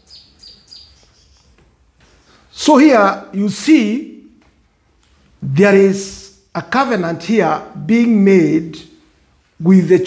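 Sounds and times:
bird chirping faintly: 0.0s - 2.5s.

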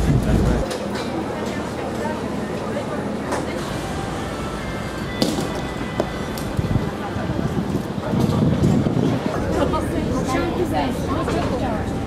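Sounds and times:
indistinct chatter of people: 0.0s - 12.0s.

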